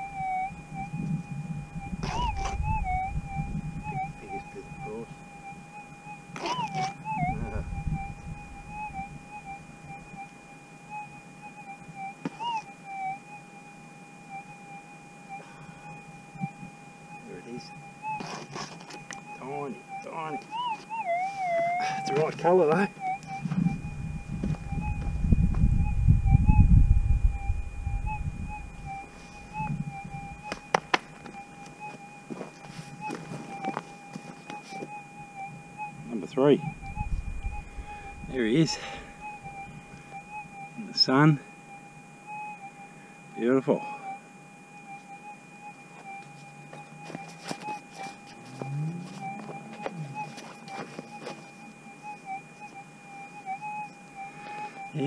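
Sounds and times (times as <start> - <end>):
metal detector warbling tone: 0.0 - 5.3, 6.3 - 10.3, 10.9 - 13.2, 17.3 - 30.6, 35.4 - 41.3
metal detector hum: 0.0 - 14.7, 15.3 - 41.4
low rumble: 7.2 - 9.2, 23.5 - 29.0, 36.6 - 39.7.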